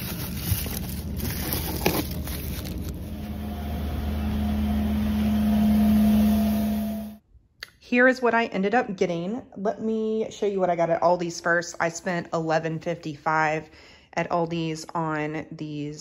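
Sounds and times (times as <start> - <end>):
bagged produce rustling: 0.0 - 3.4
steady hum: 1.9 - 7.2.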